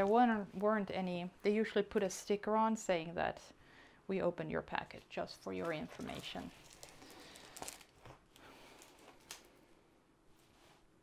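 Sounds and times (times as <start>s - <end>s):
plastic film rustling: 5.6s - 9.6s.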